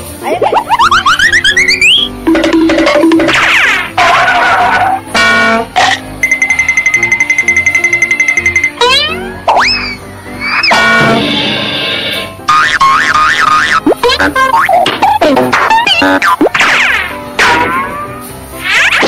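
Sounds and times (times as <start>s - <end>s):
upbeat background music: 0.0s - 19.0s
wobbling tone: 0.5s - 11.4s, 12.5s - 18.0s.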